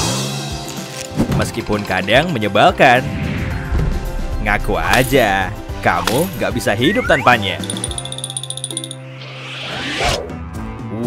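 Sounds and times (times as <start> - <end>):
light background music: 0.0 - 9.3
swoosh transition effect: 2.9 - 4.7.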